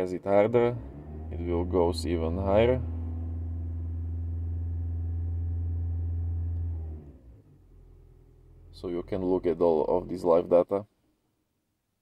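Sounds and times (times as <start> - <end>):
car engine at raised revs: 0.0 - 10.2.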